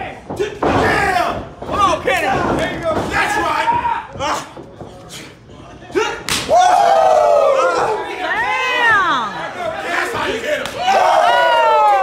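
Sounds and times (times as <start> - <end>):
crowd shouting woo: 6.5 - 9.2, 10.8 - 12.0.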